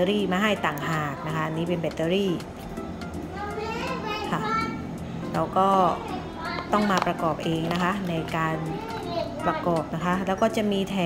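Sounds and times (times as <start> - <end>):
woman speaking: 0.0 - 2.5, 5.2 - 6.1, 6.7 - 8.8, 9.4 - 11.0
children's voices: 3.2 - 4.9, 5.7 - 7.0, 8.3 - 10.1.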